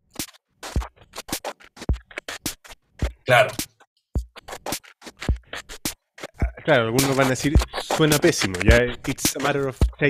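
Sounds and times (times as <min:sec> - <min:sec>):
electronic drum pattern: 0:00.6 - 0:10.0.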